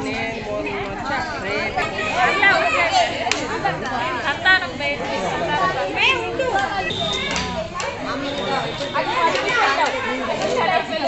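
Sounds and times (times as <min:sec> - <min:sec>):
overlapping indistinct chatter: 0:00.0 - 0:11.0.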